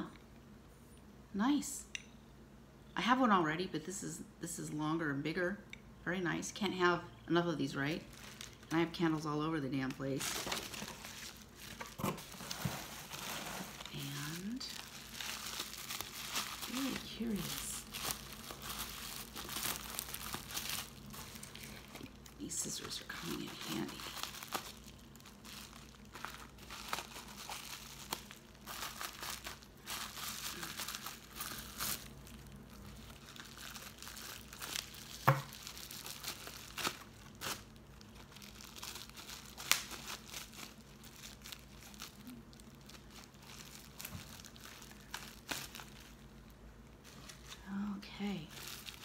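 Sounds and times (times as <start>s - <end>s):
bubble wrap crinkling: 7.5s - 49.0s.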